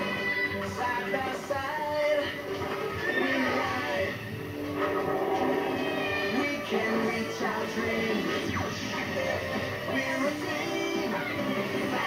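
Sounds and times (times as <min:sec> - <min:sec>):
commercial music through tv speaker: 0:00.0 - 0:12.0.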